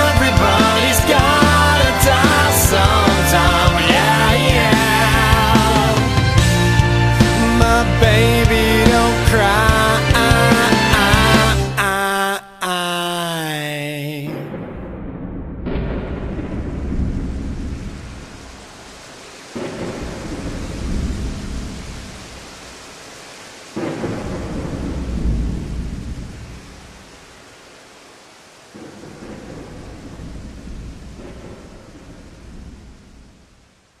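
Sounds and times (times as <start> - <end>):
thunder rolling: 0.0 - 11.7, 14.3 - 27.4, 28.7 - 33.9
steady rain: 0.0 - 12.0, 15.7 - 34.0.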